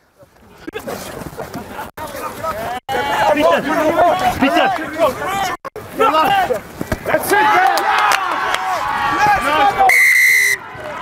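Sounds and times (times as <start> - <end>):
players shouting: 2.0 - 11.0
referee's whistle blast: 9.9 - 10.6.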